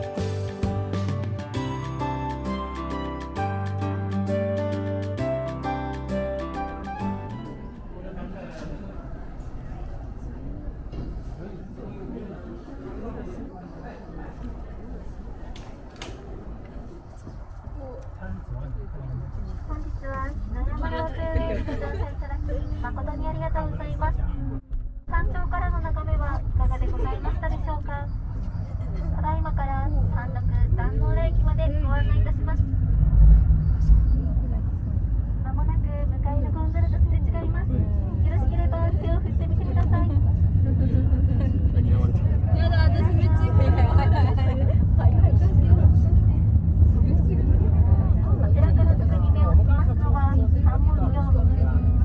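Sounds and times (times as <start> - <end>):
ropeway cabin low rumble: 0.7 - 52.0
people talking: 7.5 - 52.0.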